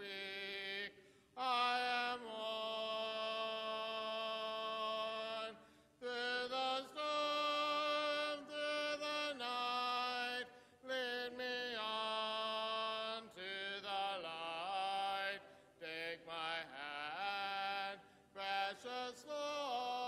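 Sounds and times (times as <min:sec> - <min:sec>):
man leading a cappella hymn: 0:00.0 - 0:20.0.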